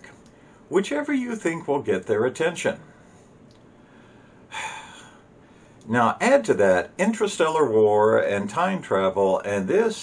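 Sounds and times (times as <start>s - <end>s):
man speaking: 0.0s - 2.9s, 5.8s - 10.0s
man breathing in: 2.9s - 5.8s.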